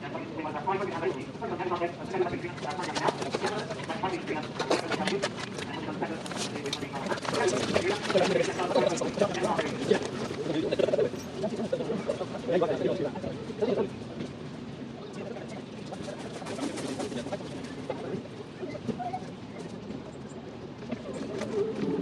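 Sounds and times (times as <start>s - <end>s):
people talking: 0.0s - 14.0s, 15.0s - 19.7s.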